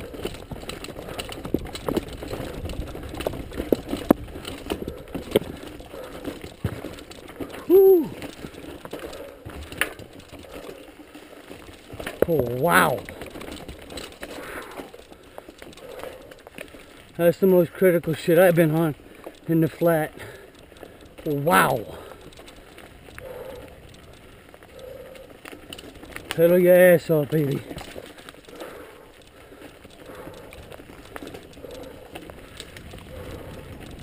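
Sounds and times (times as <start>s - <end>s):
bike mechanical rattle: 0.0s - 34.0s
bike tyres rolling on stones: 0.0s - 34.0s.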